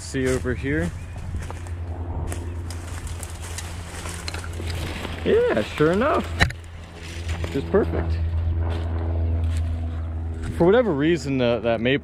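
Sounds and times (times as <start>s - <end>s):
footsteps crunching through leaves: 0.0s - 10.7s
steady low rumble: 0.0s - 12.0s
twigs cracking: 0.2s - 10.6s.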